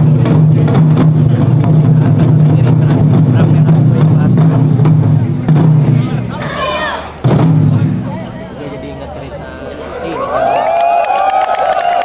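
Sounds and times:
crowd cheering and whooping: 0:09.9 - 0:12.0
clapping: 0:10.1 - 0:12.0.

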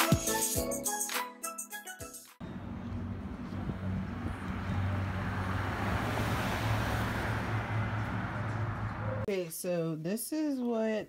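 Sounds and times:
truck tyre and road noise: 0:02.4 - 0:09.3
vehicle engine running: 0:02.4 - 0:09.3.

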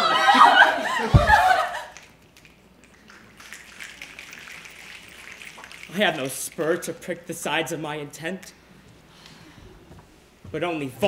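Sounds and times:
audience rustling: 0:00.0 - 0:07.4.

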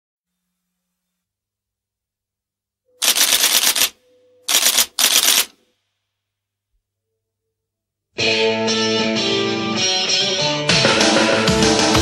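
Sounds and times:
rapid mechanical clattering: 0:03.0 - 0:03.9, 0:04.5 - 0:05.5.

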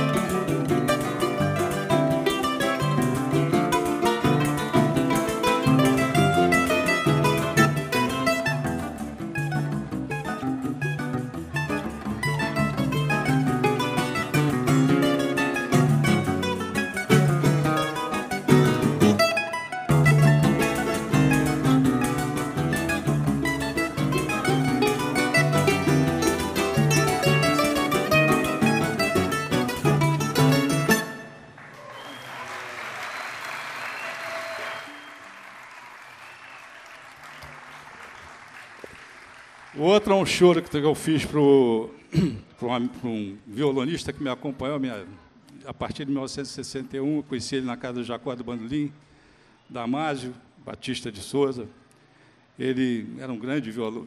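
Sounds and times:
bass: 0:00.0 - 0:31.2
acoustic guitar accompaniment: 0:00.0 - 0:31.6
mandolin melody: 0:00.0 - 0:31.6.

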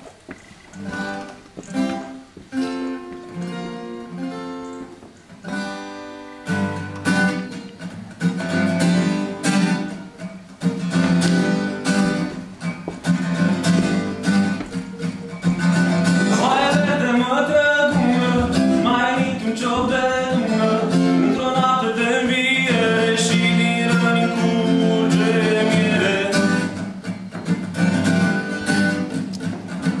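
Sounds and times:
solo guitar picking and strumming: 0:00.0 - 0:30.0.

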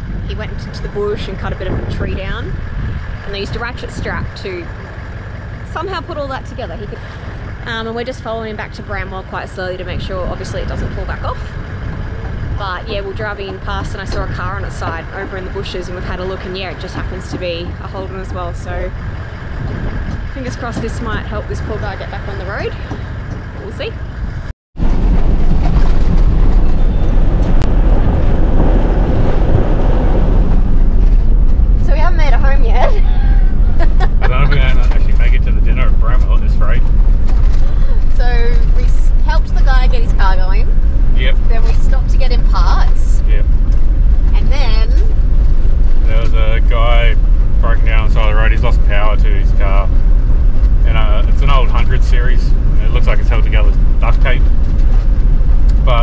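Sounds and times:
voices: 0:00.0 - 0:24.2, 0:31.8 - 0:43.6, 0:44.3 - 0:50.0, 0:50.7 - 0:54.6, 0:55.7 - 0:56.0
road and engine noise in cab: 0:00.0 - 0:56.0.

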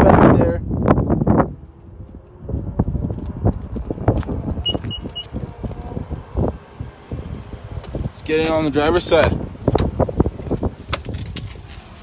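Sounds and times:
footsteps: 0:01.1 - 0:05.9
short high-pitched beeps: 0:04.6 - 0:05.3.

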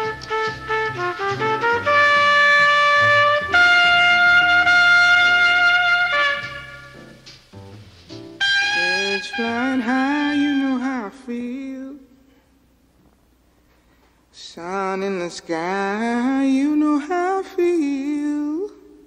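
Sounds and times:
jazz trumpet playing: 0:00.0 - 0:11.2.

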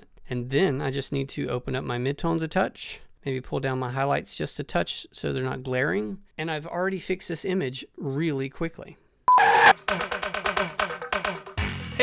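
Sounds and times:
short beep: 0:09.3 - 0:09.7
fast electronic music: 0:09.3 - 0:10.1.

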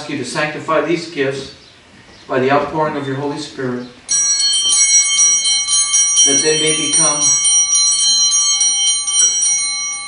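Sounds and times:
small bells shaken: 0:04.1 - 0:10.0.

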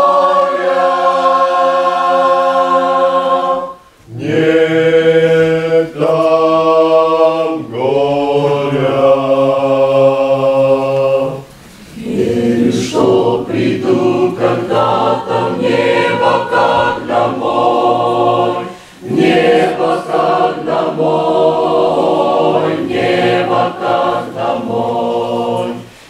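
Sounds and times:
choir singing in chords: 0:00.0 - 0:26.0.

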